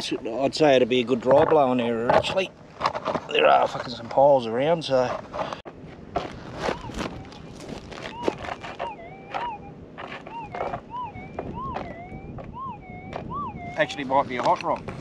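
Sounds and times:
metal detector warbling hum: 6.2s - 14.3s.

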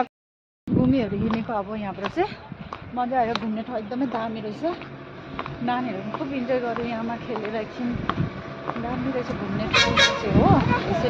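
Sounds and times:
people's voices: 0.8s - 11.0s
horn toot: 9.6s - 10.9s.

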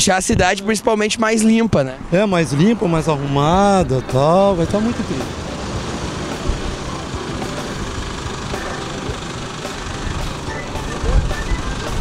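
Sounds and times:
tractor diesel engine running: 3.8s - 12.0s.

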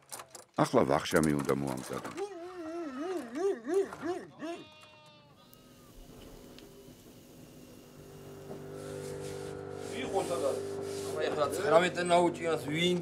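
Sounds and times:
sheep bleating: 2.3s - 6.4s.

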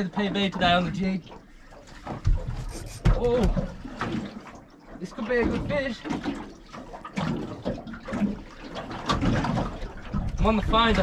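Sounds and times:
water slapping against boat hull: 0.0s - 11.0s.

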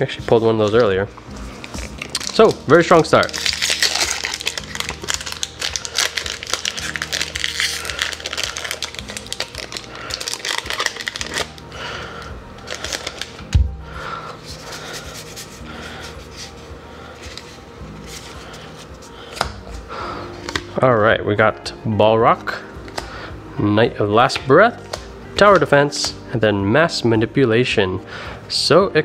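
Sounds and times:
foil wrapper crinkling: 1.6s - 13.5s.

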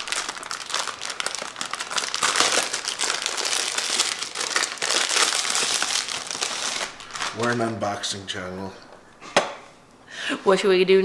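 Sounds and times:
plastic wrapper crinkling: 0.0s - 8.2s.

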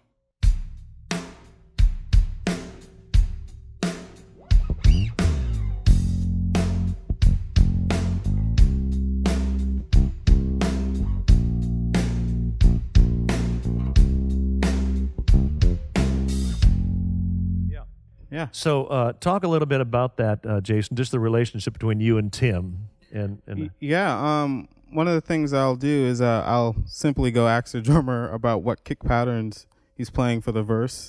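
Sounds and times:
drum kit slow groove: 0.4s - 17.0s
electric bass guitar low notes: 4.4s - 18.4s, 22.5s - 23.8s.

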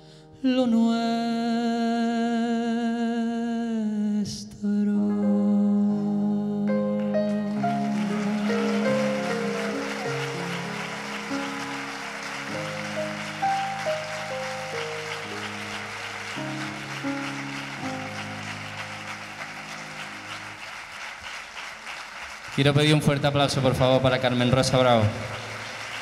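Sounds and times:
grand piano ballad: 4.6s - 21.7s, 22.5s - 26.0s
audience applause: 7.1s - 26.0s.

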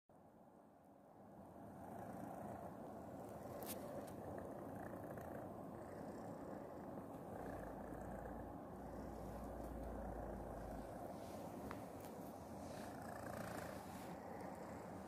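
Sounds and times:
cat purring: 1.6s - 15.0s
low rumble of brushing: 1.6s - 15.0s.

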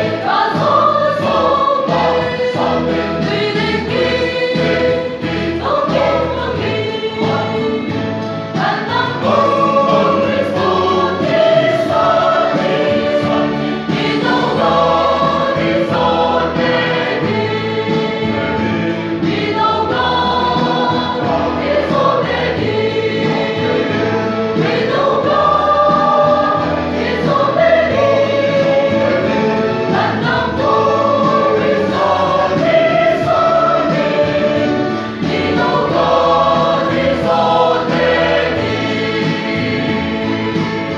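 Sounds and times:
choir singing a hymn: 0.0s - 40.9s.

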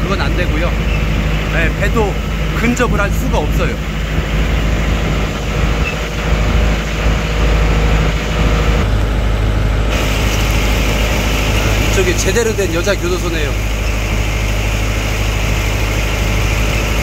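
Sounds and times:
boat engine running: 0.0s - 17.0s
water noise: 0.0s - 17.0s
wind: 0.0s - 17.0s.

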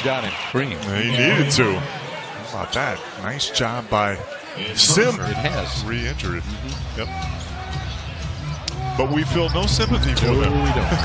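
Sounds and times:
arena background noise: 0.0s - 8.8s.

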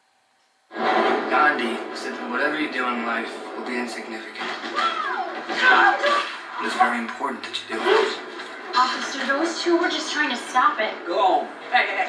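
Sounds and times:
trailer music from television: 0.0s - 12.0s
voices from television: 0.7s - 12.0s.

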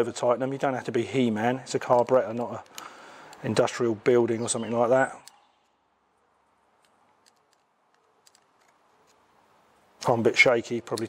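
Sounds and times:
screwdriver clicks tightening screw: 6.8s - 9.2s.

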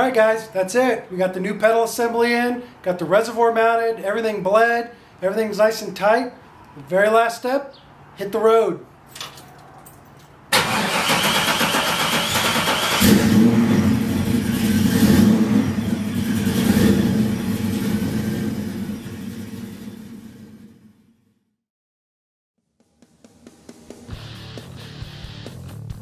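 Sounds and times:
car starter cranking: 10.5s - 14.8s
car engine running and revving: 13.0s - 20.9s.

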